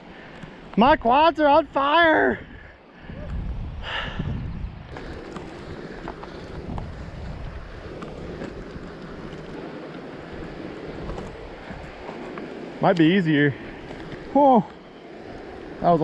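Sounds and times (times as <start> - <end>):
wind buffeting microphone: 0.6 - 16.0
footsteps on rock: 4.9 - 13.1
river rushing: 9.1 - 16.0.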